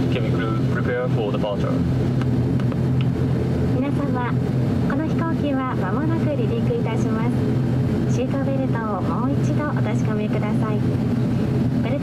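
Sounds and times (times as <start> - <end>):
turboprop engine low hum: 0.0 - 12.0.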